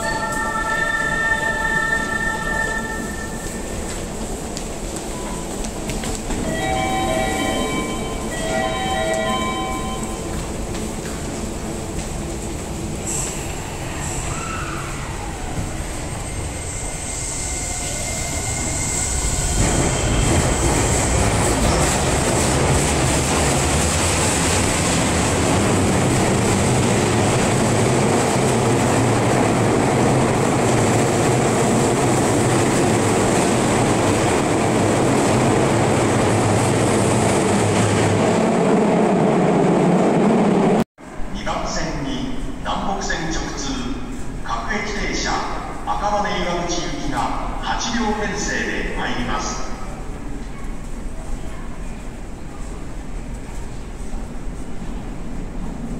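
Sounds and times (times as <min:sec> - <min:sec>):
train running noise: 0:00.0 - 0:40.8.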